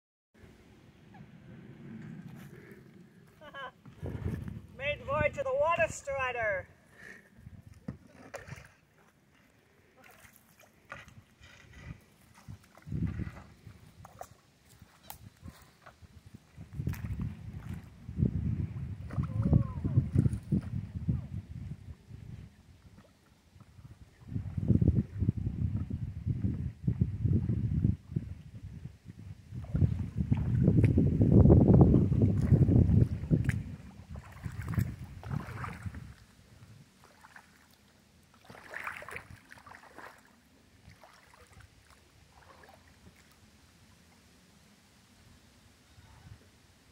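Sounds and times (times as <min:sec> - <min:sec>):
low rumble: 0:00.4 - 0:05.2
wind rumble on microphone: 0:00.4 - 0:06.0, 0:07.2 - 0:08.7, 0:10.9 - 0:37.3, 0:45.8 - 0:46.6
paddle splashing in water: 0:03.4 - 0:18.0, 0:18.7 - 0:20.9, 0:29.5 - 0:31.0, 0:31.8 - 0:44.2.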